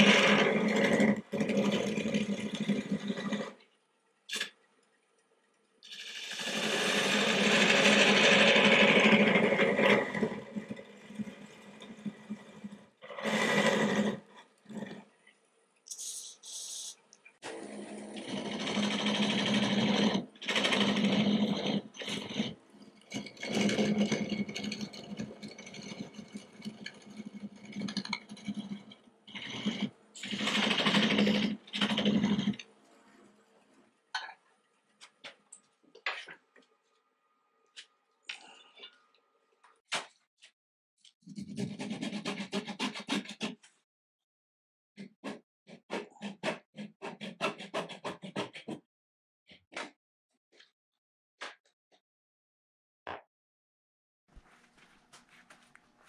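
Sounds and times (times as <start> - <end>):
lathe tool cutting wood: 6.2 - 9.9.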